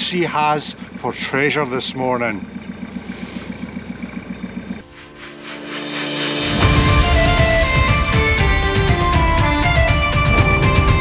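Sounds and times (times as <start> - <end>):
diesel boat engine idling: 0.0 - 5.0, 6.6 - 11.0
theme music: 4.8 - 11.0.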